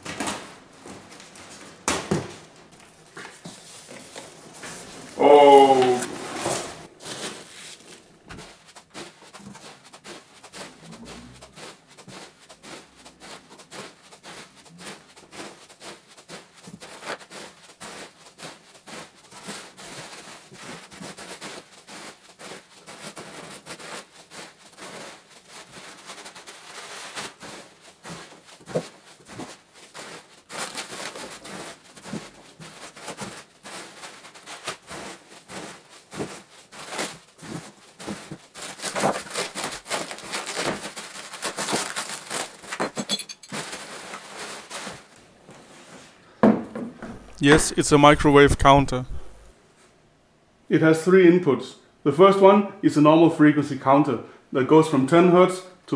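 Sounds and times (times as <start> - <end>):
packing peanuts rustling: 36.7 - 42.9, 43.5 - 45.2.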